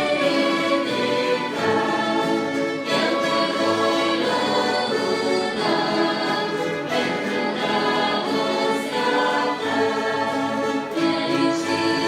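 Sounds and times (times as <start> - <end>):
string orchestra playing slow chords: 0.0 - 12.0.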